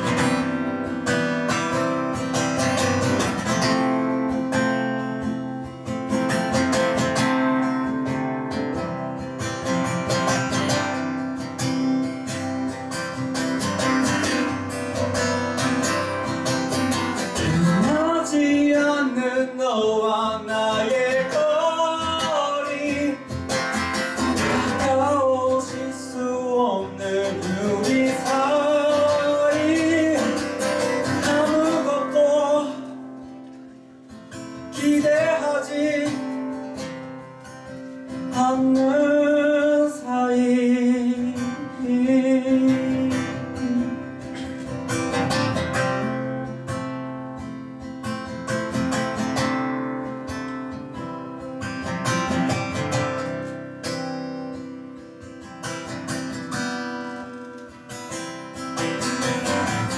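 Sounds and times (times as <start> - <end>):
acoustic guitar strumming: 0.0 - 59.9
man singing: 17.2 - 33.3, 34.5 - 36.8, 38.1 - 45.2.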